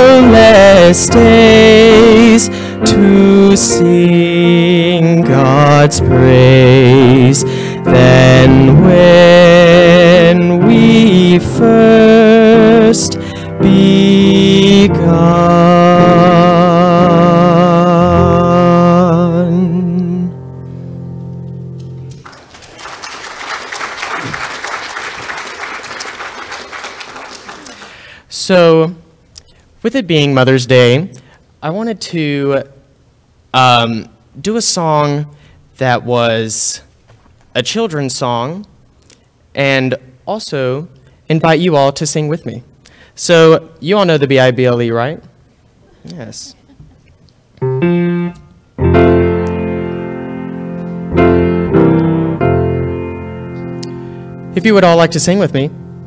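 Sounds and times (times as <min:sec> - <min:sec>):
piano chords: 0:00.0 - 0:25.2, 0:47.6 - 0:56.0
congregation applauding: 0:22.2 - 0:28.2.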